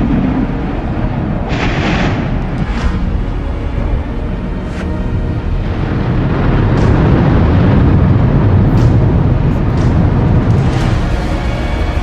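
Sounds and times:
quiet music: 0:00.0 - 0:12.0
volcano rumbling: 0:00.0 - 0:12.0.

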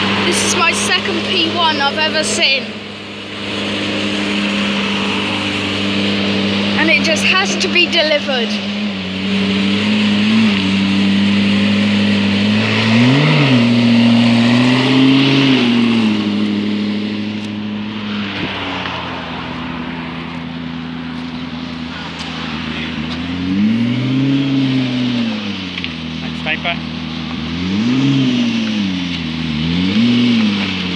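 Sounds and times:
car engine idling: 0:00.0 - 0:30.9
engine throttle blips: 0:00.0 - 0:30.9.

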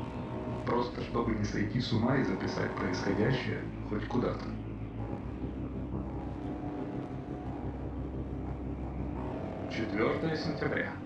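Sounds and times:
low rumble drone: 0:00.0 - 0:11.0.

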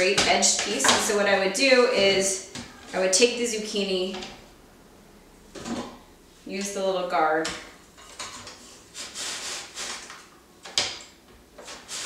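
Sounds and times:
zucchini scraping on slicer blade: 0:08.6 - 0:10.1, 0:11.6 - 0:12.0.

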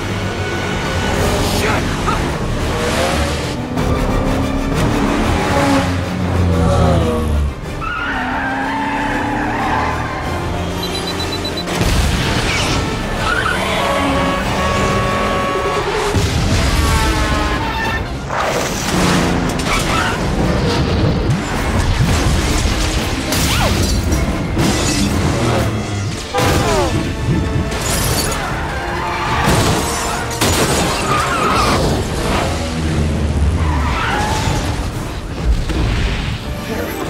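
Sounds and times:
car engine: 0:00.0 - 0:23.4
dramatic music score: 0:00.0 - 0:37.0
tires skidding: 0:07.7 - 0:11.8.

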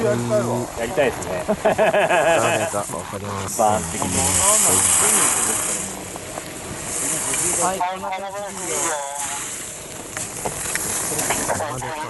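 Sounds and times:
ski edges hissing on hard snow: 0:04.0 - 0:06.0, 0:06.8 - 0:07.8, 0:08.5 - 0:09.7.

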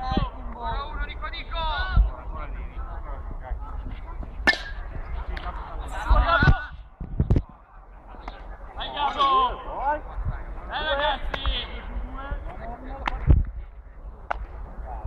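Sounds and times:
players shouting: 0:08.2 - 0:12.2.

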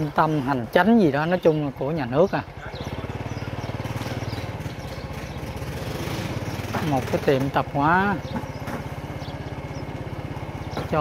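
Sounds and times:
small motorcycle engine running: 0:00.0 - 0:11.0.

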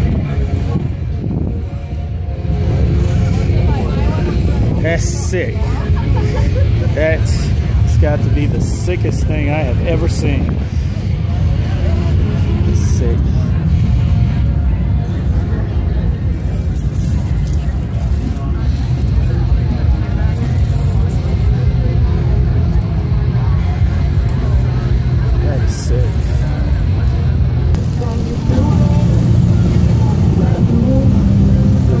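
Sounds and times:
indistinct voices: 0:00.0 - 0:32.0
low rumble: 0:00.0 - 0:32.0.

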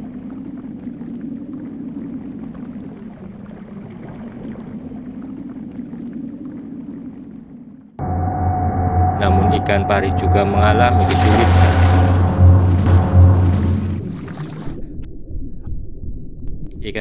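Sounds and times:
underwater rumble and bubbling: 0:09.7 - 0:16.6.

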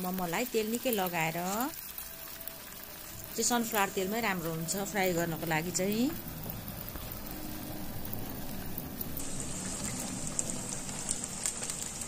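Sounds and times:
dumplings sizzling in hot oil: 0:00.0 - 0:12.0.

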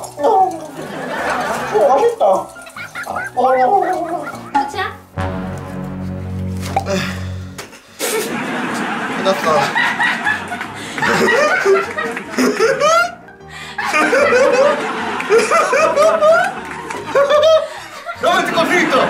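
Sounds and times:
background music: 0:00.0 - 0:19.0
laughter: 0:00.8 - 0:04.7, 0:08.0 - 0:19.0.

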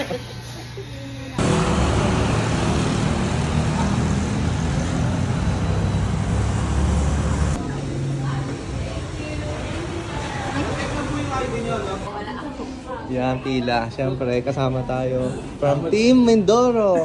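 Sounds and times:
city street traffic rumble: 0:01.4 - 0:15.3.

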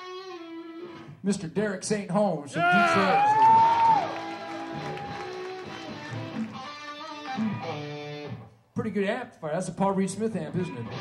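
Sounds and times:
electric guitar notes: 0:00.0 - 0:01.2, 0:04.0 - 0:08.6.

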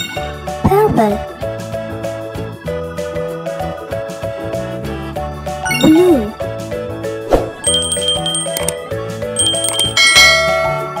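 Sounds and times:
cheerful children's music: 0:00.0 - 0:11.0
bell-like chimes: 0:07.6 - 0:11.0.

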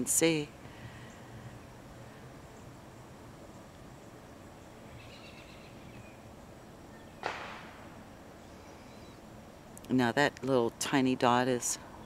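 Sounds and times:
faint high chirping: 0:08.4 - 0:09.3.

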